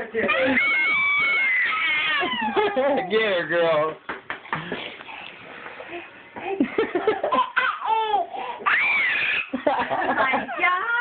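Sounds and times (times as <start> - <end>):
baby laughing: 1.7 - 3.3, 7.0 - 9.8
people laughing: 2.2 - 3.3, 6.5 - 7.4, 9.5 - 10.8.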